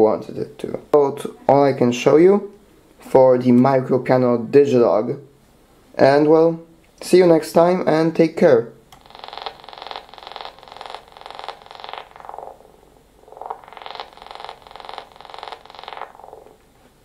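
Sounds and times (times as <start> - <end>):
pulsing buzzy synthesizer tone: 9.0 - 16.6.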